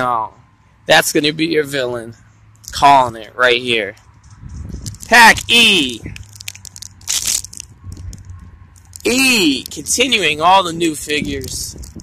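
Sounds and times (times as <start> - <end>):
plastic packet crinkling: 4.8 - 9.9.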